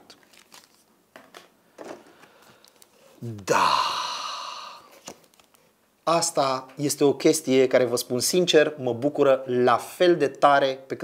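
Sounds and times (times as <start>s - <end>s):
paper and plastic packaging crinkling: 0.1s - 0.9s.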